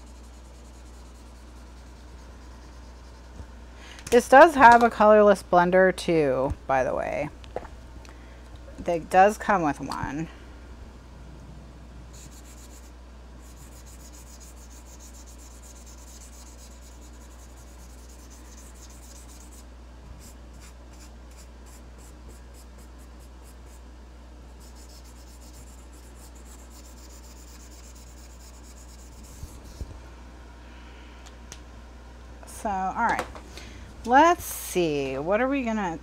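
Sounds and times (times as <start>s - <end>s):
marker scratching across paper: 0.0s - 3.4s, 12.1s - 19.6s, 24.6s - 29.9s
steady low hum: 0.0s - 36.0s.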